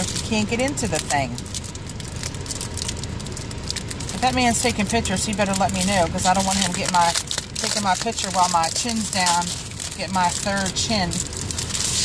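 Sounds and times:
low steady rumble: 0.0s - 12.0s
plastic packaging crinkling: 0.0s - 12.0s.

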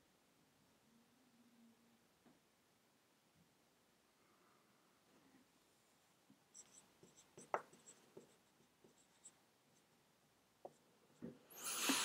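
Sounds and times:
marker squeaking on whiteboard: 6.6s - 9.4s.

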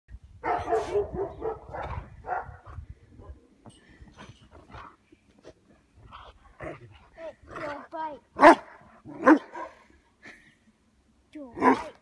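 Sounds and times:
dog barking: 0.4s - 2.6s, 8.4s - 9.8s.

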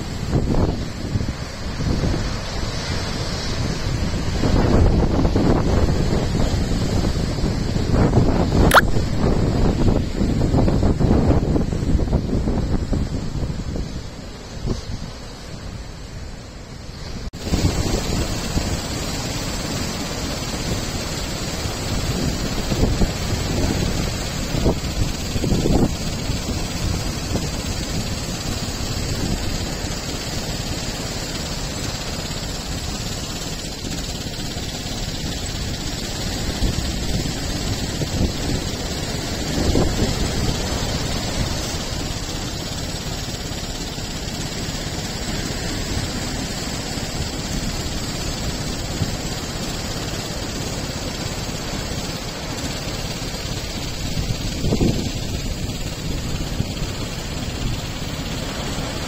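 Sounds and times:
wind buffeting microphone: 0.0s - 15.3s, 17.4s - 59.0s.

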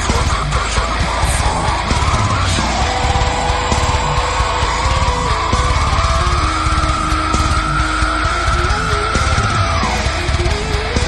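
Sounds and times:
heavy drum hits: 1.2s - 11.0s
high squealing guitar note: 1.8s - 11.0s.

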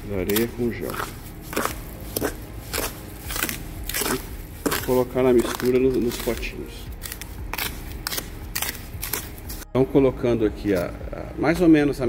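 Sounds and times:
spoon scraping gritty mix: 0.0s - 9.7s.

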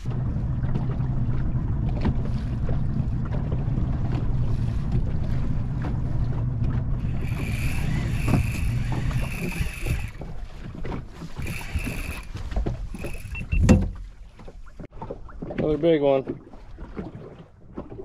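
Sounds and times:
boat motor running: 0.0s - 15.2s
fishing reel drag buzzing: 7.0s - 10.4s, 11.2s - 13.7s.

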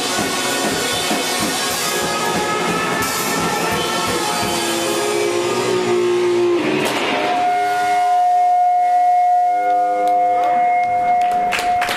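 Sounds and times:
electric guitars ringing chord: 0.0s - 11.9s
guitar amplifier feedback tone: 0.0s - 11.9s.

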